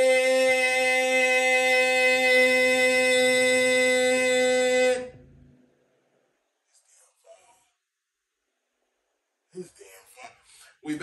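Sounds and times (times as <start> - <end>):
long held note: 0.0 - 5.5.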